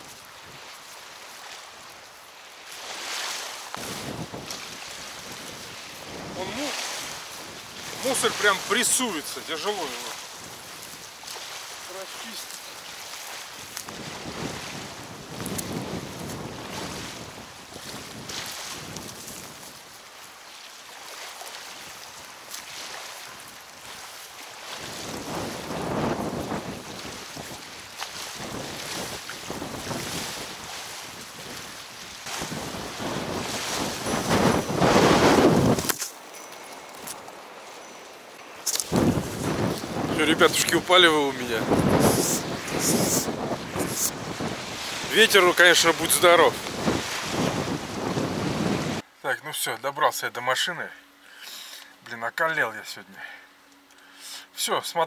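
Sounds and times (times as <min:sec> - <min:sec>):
waves washing against bank: 0:00.0 - 0:49.1
wind buffeting microphone: 0:03.8 - 0:08.9, 0:13.5 - 0:19.8, 0:24.7 - 0:36.0, 0:38.7 - 0:49.0.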